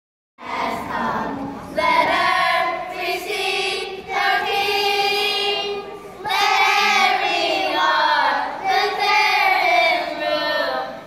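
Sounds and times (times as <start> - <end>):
children's choir singing: 0.4 - 11.0.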